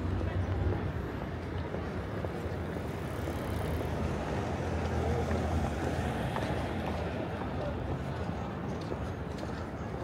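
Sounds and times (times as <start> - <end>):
passers-by talking: 0.0 - 10.0
traffic rumble: 0.0 - 10.0.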